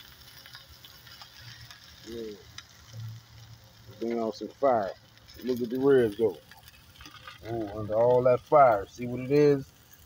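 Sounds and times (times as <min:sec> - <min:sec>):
ribs sizzling on grill: 0:00.0 - 0:10.0
small crackles: 0:00.0 - 0:10.0.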